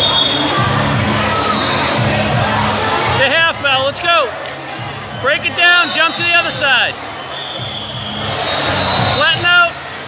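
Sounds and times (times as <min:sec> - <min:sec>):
crowd in a large hall: 0:00.0 - 0:10.0.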